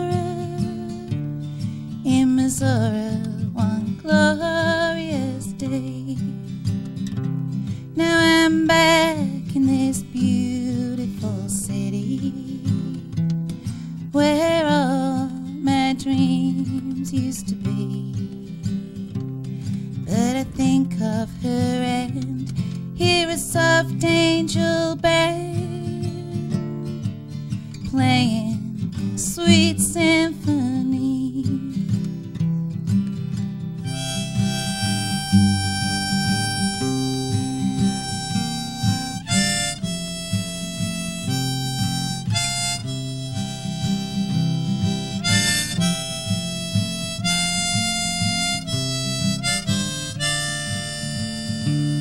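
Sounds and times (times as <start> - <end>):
acoustic guitar strumming: 0.0 - 52.0
woman singing country song: 0.0 - 52.0
harmonica long notes: 33.8 - 52.0.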